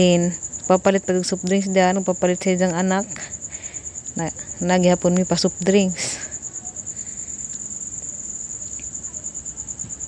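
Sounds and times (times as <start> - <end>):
insect trilling: 0.0 - 10.0.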